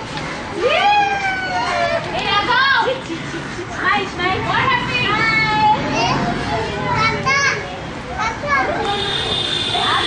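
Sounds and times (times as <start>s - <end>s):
young children calling out: 7.1s - 10.0s.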